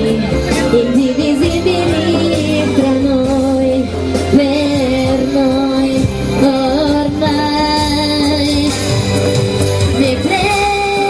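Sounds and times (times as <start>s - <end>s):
woman singing: 0.0s - 9.0s, 9.9s - 11.0s
instrumental backing: 0.0s - 11.0s.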